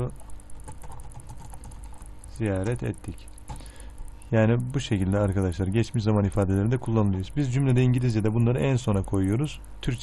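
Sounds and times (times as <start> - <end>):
keyboard typing: 0.0 - 10.0
low steady hum: 0.0 - 10.0.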